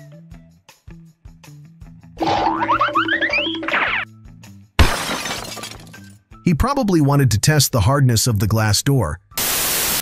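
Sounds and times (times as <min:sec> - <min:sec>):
rising cartoon glides: 0:02.2 - 0:04.0
comic background music: 0:02.2 - 0:04.2.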